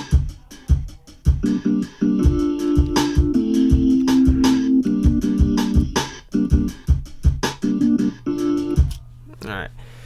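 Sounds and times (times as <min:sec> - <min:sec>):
sampled hip-hop beat: 0:00.0 - 0:09.1
sliced keyboard chords: 0:00.0 - 0:09.2.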